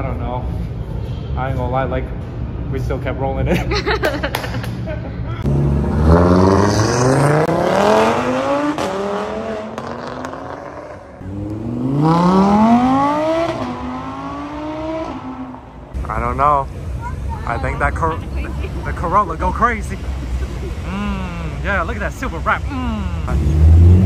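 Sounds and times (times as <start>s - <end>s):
cars accelerating hard: 5.4s - 16.0s, 22.8s - 24.0s.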